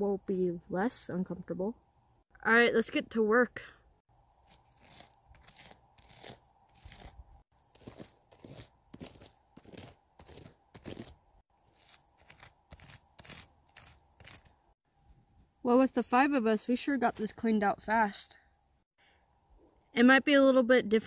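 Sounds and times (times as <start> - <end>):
toys scraping through gravel: 4.5 - 14.5.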